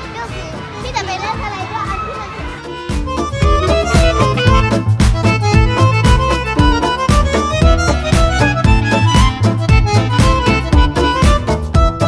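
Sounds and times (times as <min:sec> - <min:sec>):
children talking and calling out: 0:00.0 - 0:04.7
background music: 0:00.0 - 0:12.0.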